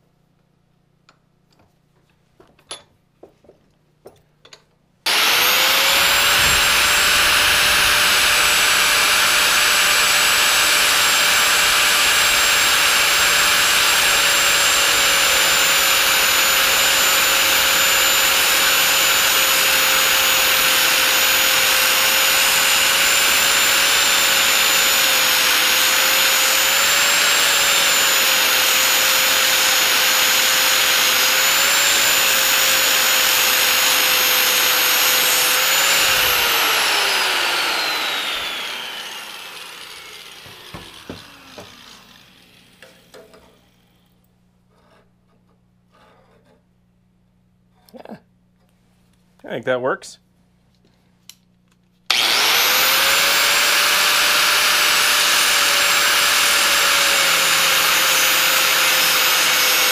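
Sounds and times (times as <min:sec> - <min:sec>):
angle grinder grinding steel: 0:05.1 - 0:44.0, 0:52.1 - 0:59.9.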